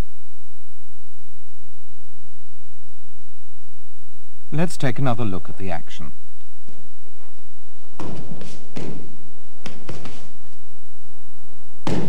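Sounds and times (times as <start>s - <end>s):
bodies thudding onto mat: 7.9s - 10.6s.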